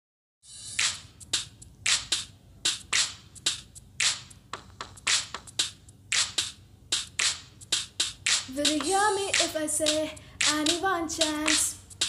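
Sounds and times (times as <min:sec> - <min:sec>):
hand percussion snapping hits: 0:04.9 - 0:08.5.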